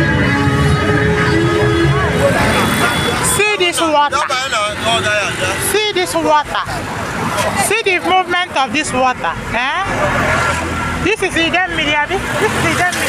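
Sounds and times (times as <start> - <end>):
auto-rickshaw engine and road noise: 0.0 - 13.0
voices talking: 0.0 - 13.0.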